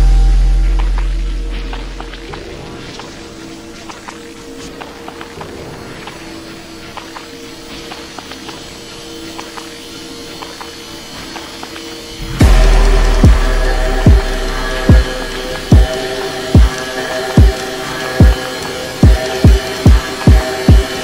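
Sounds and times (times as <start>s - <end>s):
deep bass boom: 0.0s - 2.0s, 12.2s - 15.9s.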